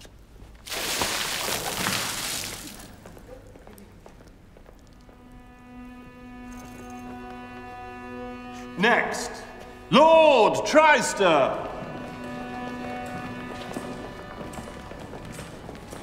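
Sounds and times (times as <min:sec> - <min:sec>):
water splashing onto raincoat: 0:00.6 - 0:03.2
string chord background music: 0:04.9 - 0:16.0.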